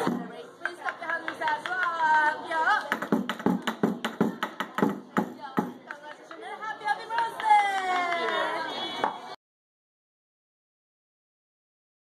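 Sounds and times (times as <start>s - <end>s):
hand claps: 0.0s - 5.0s, 7.0s - 9.2s.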